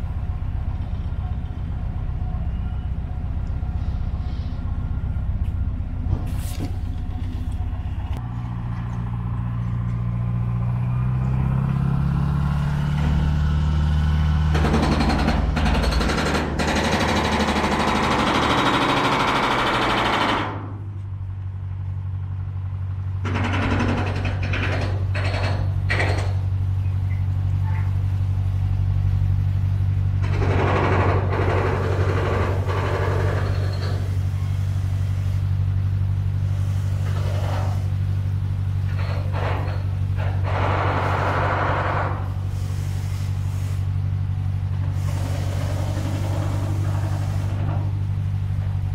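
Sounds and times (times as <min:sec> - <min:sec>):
motor boat engine droning: 0:00.0 - 0:48.9.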